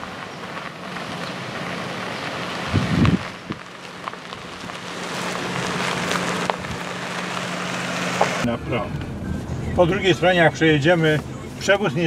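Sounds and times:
tyres crackling over gravel: 0.0s - 9.1s.

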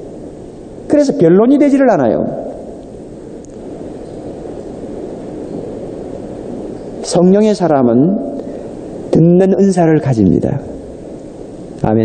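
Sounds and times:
recording hiss: 0.0s - 12.0s
room rumble: 0.0s - 12.0s.

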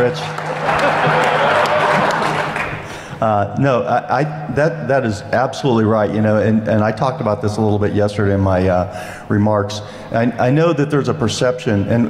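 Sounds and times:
audience applause: 0.0s - 2.9s
audience laughter: 0.4s - 2.6s.

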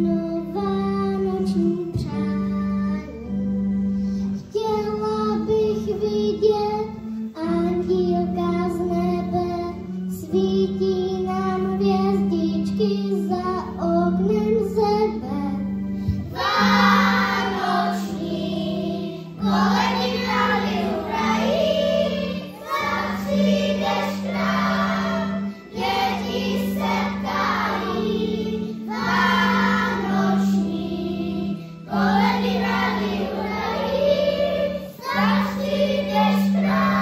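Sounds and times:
steady held accompaniment: 14.6s - 37.0s
young children singing: 16.3s - 37.0s.

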